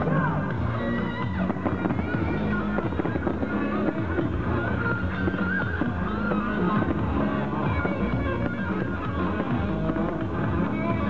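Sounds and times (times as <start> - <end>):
fireworks bursting and crackling: 0.0 - 11.0
loud music: 0.0 - 11.0.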